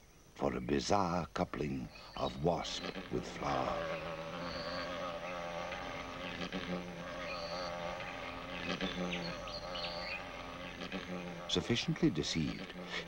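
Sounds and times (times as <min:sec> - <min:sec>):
wasp wings buzzing: 0:01.6 - 0:13.0.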